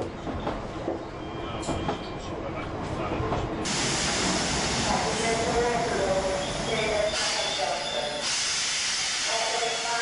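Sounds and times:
train hissing at platform: 0:03.6 - 0:10.0.

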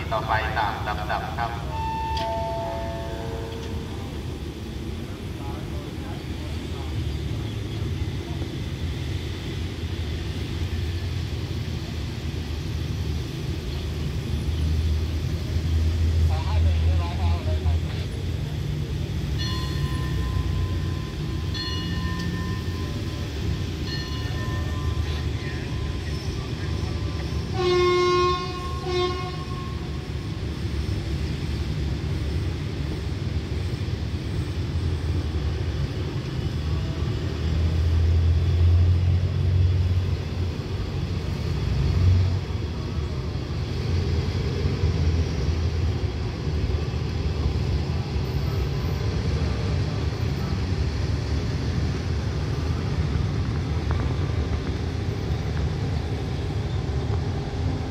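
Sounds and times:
locomotive engine rumbling: 0:00.0 - 0:57.9
train coaches rolling: 0:00.0 - 0:57.9
train horn: 0:01.7 - 0:04.1, 0:27.4 - 0:30.1.

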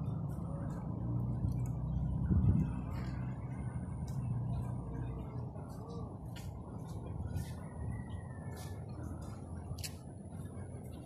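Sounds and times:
low rumble: 0:00.0 - 0:09.7.

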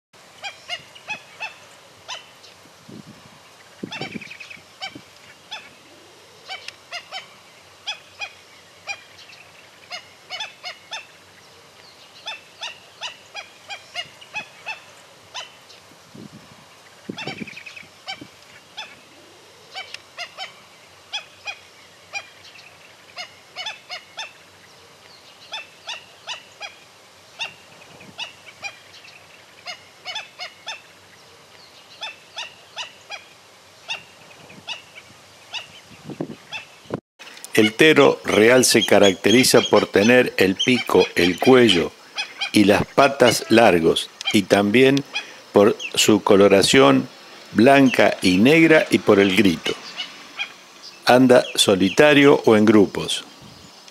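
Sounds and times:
birds calling in high notes: 0:00.4 - 0:02.6, 0:03.4 - 0:53.9.

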